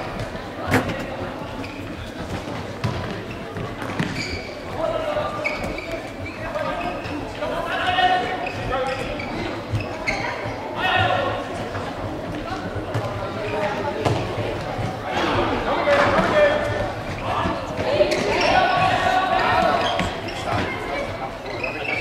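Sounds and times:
ball thuds echoing in hall: 0:00.0 - 0:07.3, 0:09.6 - 0:21.2.

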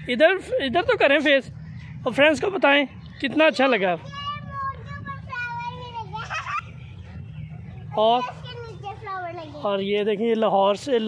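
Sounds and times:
murmur of children and people: 0:00.0 - 0:11.0.

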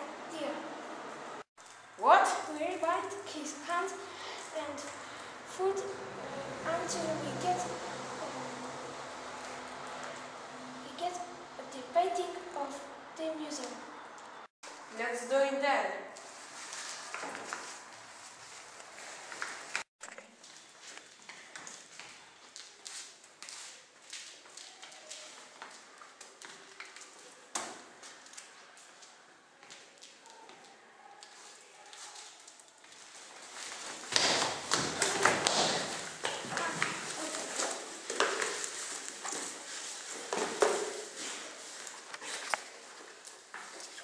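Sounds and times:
rustling and scuffling on floor: 0:16.2 - 0:44.0
taps and knocks of people moving: 0:33.6 - 0:44.0.

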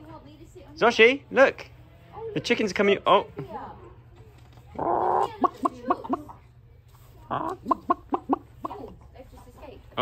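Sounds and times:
hens clucking: 0:04.7 - 0:06.6, 0:07.2 - 0:09.1.

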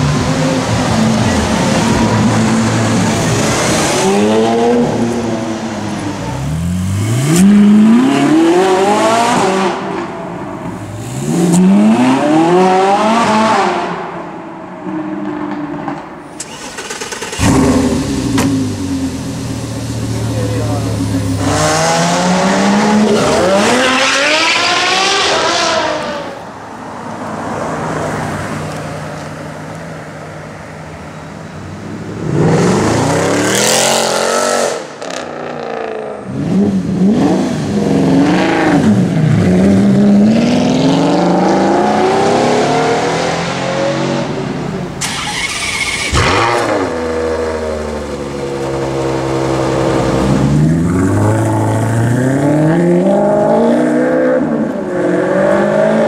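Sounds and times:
supercar engines revving: 0:00.0 - 0:15.4, 0:16.3 - 0:26.5, 0:27.2 - 0:56.0.

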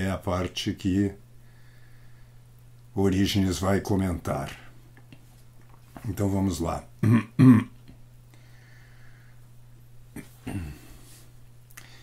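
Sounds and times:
man clearing his throat: 0:07.0 - 0:07.8, 0:10.2 - 0:11.0.

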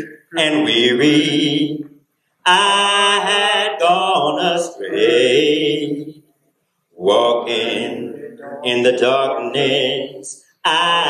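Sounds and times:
man singing a hymn: 0:00.0 - 0:06.2, 0:07.0 - 0:11.0.

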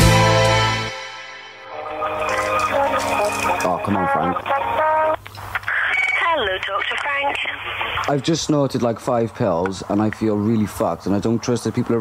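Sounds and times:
speech over telephone line: 0:02.0 - 0:08.5.

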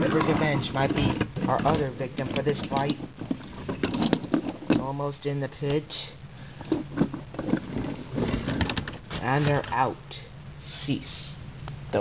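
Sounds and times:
plastic clicks clattering: 0:00.0 - 0:04.8, 0:06.6 - 0:09.7.

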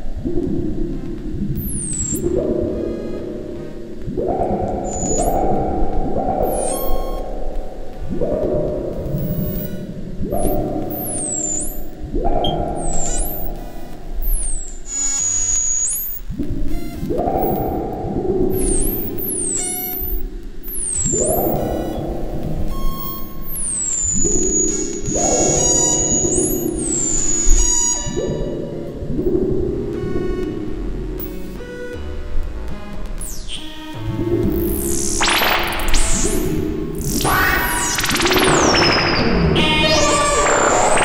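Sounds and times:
low rumbling synth tone: 0:00.0 - 0:41.0
high whistling synth tones: 0:01.5 - 0:08.3, 0:09.0 - 0:16.3, 0:17.2 - 0:29.4, 0:34.4 - 0:41.0
thin high synthesizer tone: 0:01.6 - 0:05.8, 0:06.4 - 0:07.4, 0:34.4 - 0:41.0.

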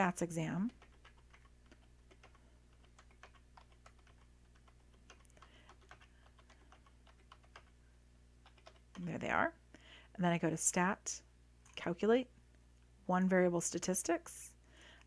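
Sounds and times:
low steady hum: 0:00.0 - 0:15.0
computer keyboard typing: 0:00.7 - 0:07.8, 0:08.4 - 0:09.1.

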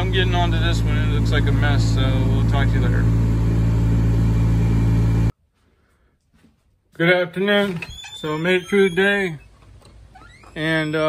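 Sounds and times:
truck engine and road drone: 0:00.0 - 0:05.3.

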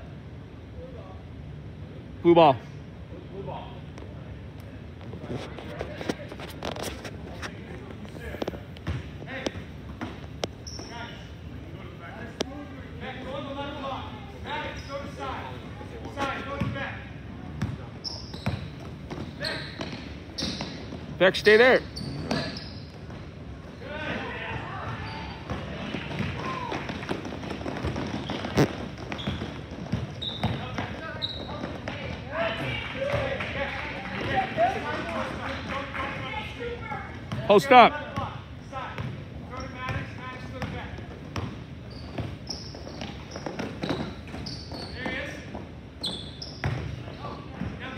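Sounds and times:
voices of players and spectators: 0:00.0 - 0:47.9
basketball bouncing on gym floor: 0:08.8 - 0:11.2, 0:16.5 - 0:16.9, 0:17.5 - 0:21.2, 0:24.5 - 0:33.4, 0:35.7 - 0:37.5, 0:38.1 - 0:47.8
short high squeaks: 0:10.6 - 0:11.2, 0:18.0 - 0:18.8, 0:19.4 - 0:23.0, 0:28.1 - 0:31.8, 0:41.8 - 0:45.3, 0:46.0 - 0:47.2
basketball bouncing on hardwood: 0:25.5 - 0:32.2.

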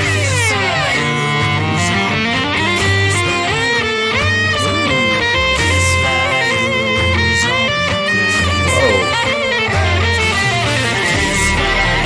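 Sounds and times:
vocal group singing harmonies: 0:00.0 - 0:12.0.

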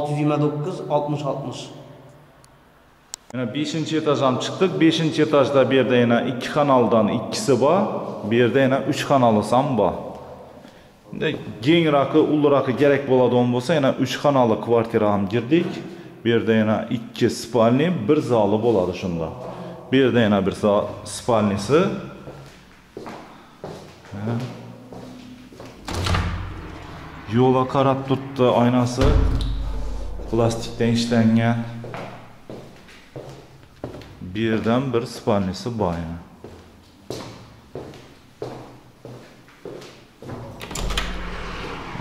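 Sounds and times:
footsteps in empty room: 0:06.4 - 0:12.2, 0:15.3 - 0:16.2, 0:18.1 - 0:27.4, 0:28.9 - 0:42.0
footsteps on hard floor: 0:22.3 - 0:25.8, 0:31.8 - 0:34.2, 0:36.4 - 0:40.6.

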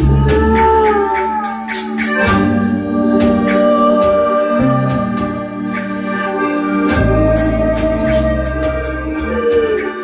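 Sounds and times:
accordion chords: 0:00.0 - 0:10.0
violin: 0:00.0 - 0:10.0.

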